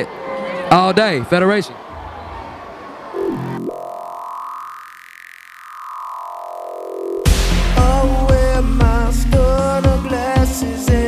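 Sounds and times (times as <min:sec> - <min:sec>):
held synthesizer chord: 0:03.1 - 0:09.7.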